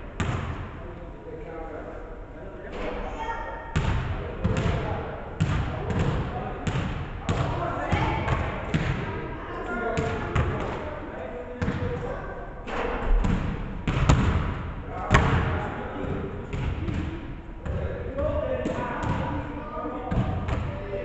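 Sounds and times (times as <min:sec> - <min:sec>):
murmur of voices: 0:00.0 - 0:21.0
basketball bouncing on wooden floor: 0:13.2 - 0:14.5.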